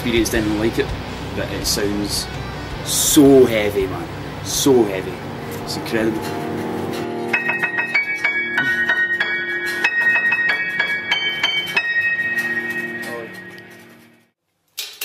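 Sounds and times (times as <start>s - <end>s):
keyboard music: 0.5s - 14.3s.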